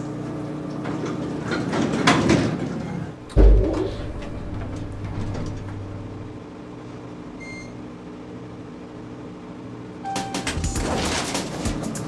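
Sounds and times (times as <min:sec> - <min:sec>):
elevator machinery hum: 0:02.6 - 0:06.7.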